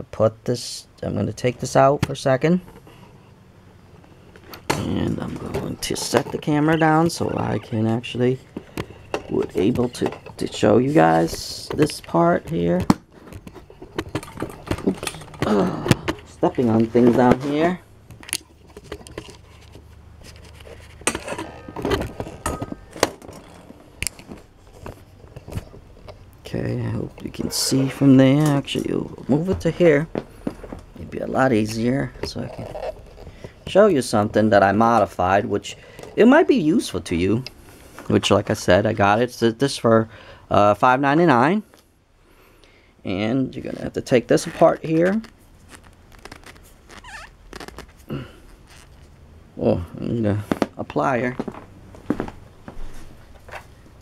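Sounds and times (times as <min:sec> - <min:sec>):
plastic squeaking: 0:04.3 - 0:26.3, 0:43.7 - 0:49.2.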